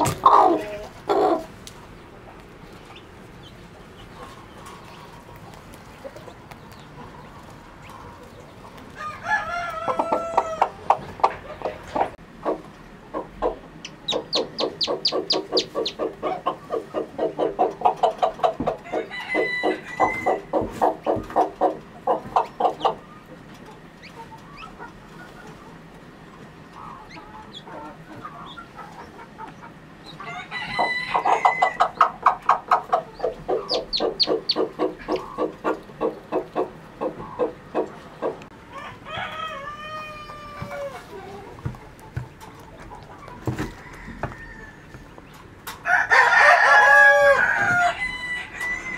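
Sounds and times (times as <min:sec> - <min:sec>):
hen clucking: 0:00.0 - 0:48.9
rooster crowing: 0:08.9 - 0:10.8, 0:18.8 - 0:20.5, 0:30.2 - 0:31.9, 0:38.7 - 0:41.1, 0:43.5 - 0:45.0, 0:45.8 - 0:48.9.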